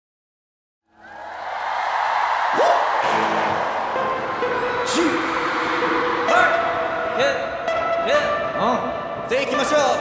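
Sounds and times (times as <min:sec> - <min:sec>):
concert crowd cheering and screaming: 0:01.0 - 0:07.2.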